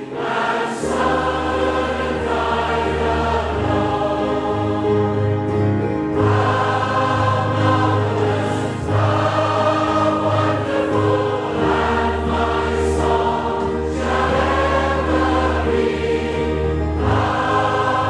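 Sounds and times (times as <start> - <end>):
choir singing a hymn: 0.0 - 18.0.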